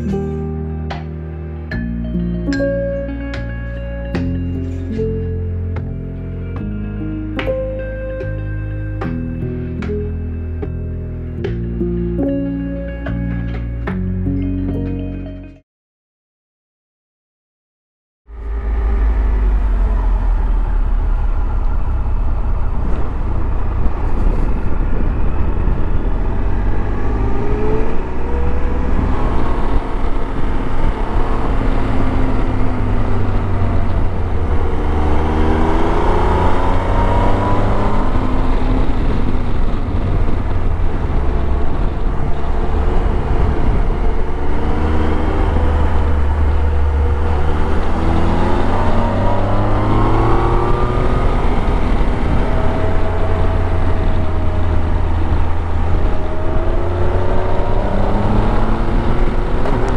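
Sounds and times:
motorcycle engine accelerating: 0.0 - 7.6, 18.3 - 59.9
wind rumble on microphone: 18.3 - 59.9.

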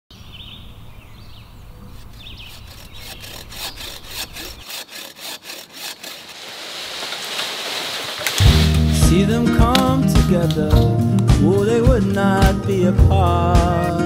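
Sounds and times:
birds chirping: 0.1 - 5.0
hand saw cutting wood: 1.9 - 9.0.

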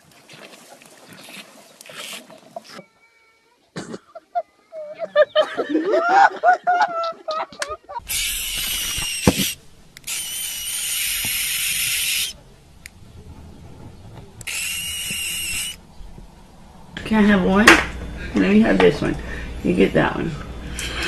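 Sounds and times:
animal hissing: 8.0 - 12.4, 14.4 - 15.8.

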